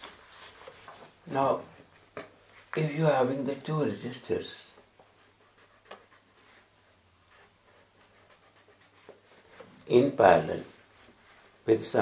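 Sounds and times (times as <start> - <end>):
marker scratching on paper: 5.1 - 9.7.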